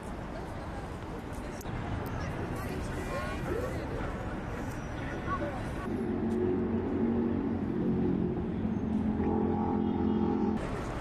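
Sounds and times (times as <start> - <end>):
vehicle engine humming: 5.8 - 11.0.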